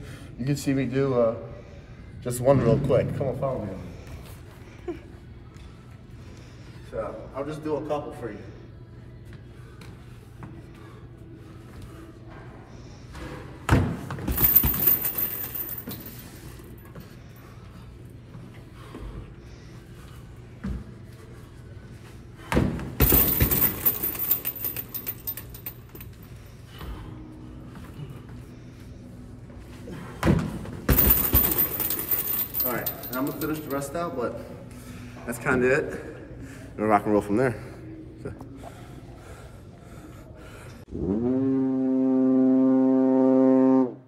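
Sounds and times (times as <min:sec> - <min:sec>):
low room hum: 0:00.0 - 0:44.0
metallic jangle of swinging bag: 0:14.3 - 0:17.1, 0:23.0 - 0:26.4, 0:30.9 - 0:34.1.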